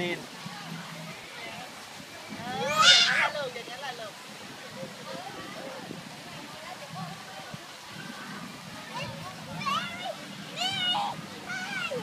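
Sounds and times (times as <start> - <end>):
child squealing: 2.6 - 3.3.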